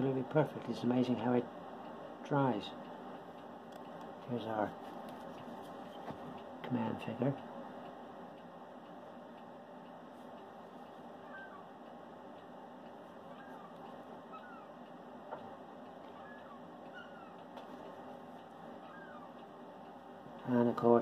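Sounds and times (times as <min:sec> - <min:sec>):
faint bird chirps: 0:11.2 - 0:11.7, 0:13.3 - 0:14.8, 0:16.1 - 0:17.4, 0:18.8 - 0:19.4.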